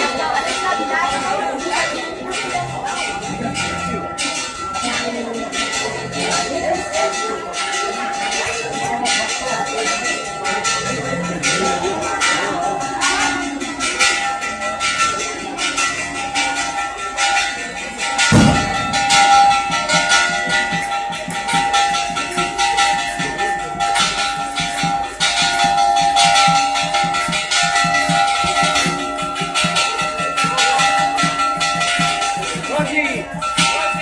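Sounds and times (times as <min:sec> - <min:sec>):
bells ringing: 0:00.0 - 0:34.0.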